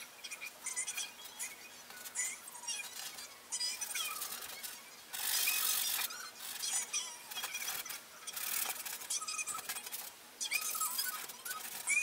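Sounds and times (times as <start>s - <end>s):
bristles squeaking: 0.0s - 12.0s.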